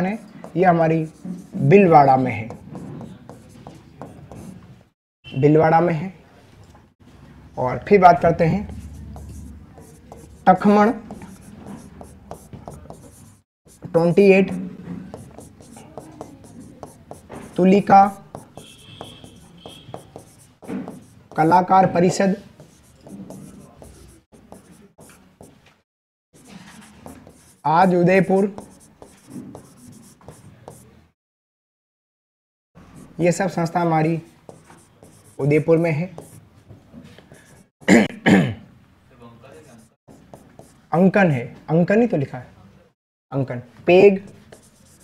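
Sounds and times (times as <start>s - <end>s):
pen squeaking on glass: 14.4s - 21.2s
man clearing his throat: 37.8s - 38.7s.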